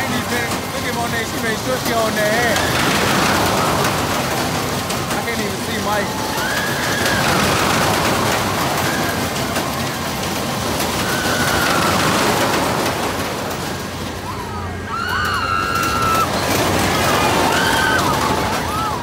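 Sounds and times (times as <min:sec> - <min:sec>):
fairground crowd: 0:00.0 - 0:19.0
fairground machinery noise: 0:00.0 - 0:19.0
riders screaming: 0:02.3 - 0:04.2, 0:06.0 - 0:09.5, 0:10.8 - 0:12.6, 0:14.2 - 0:19.0.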